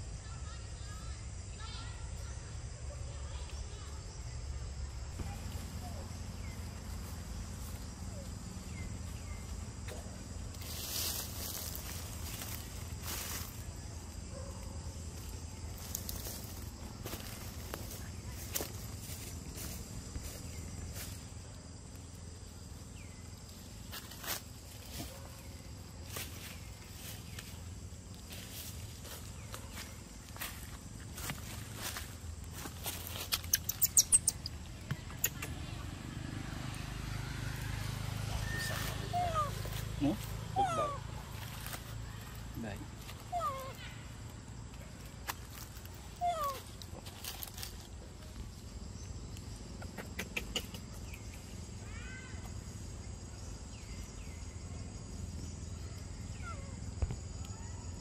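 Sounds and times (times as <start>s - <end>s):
outdoor background: 0.0s - 58.0s
rustling in dry leaves: 5.1s - 34.9s, 35.6s - 49.0s
monkey squeaky calls: 33.3s - 35.6s, 38.4s - 41.0s, 46.2s - 46.7s
sharp high chirping clicks: 33.3s - 35.7s.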